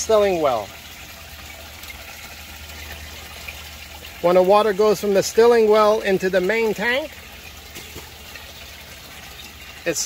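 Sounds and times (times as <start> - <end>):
water trickling and splashing: 0.0 - 10.0.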